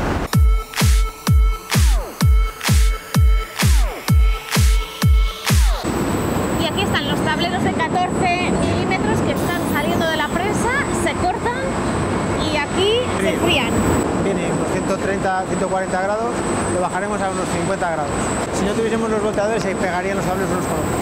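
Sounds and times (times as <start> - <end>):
thin high whine: 0.0 - 11.4, 12.4 - 21.0
electronic dance beat: 0.1 - 5.9
production line rollers running: 5.8 - 21.0.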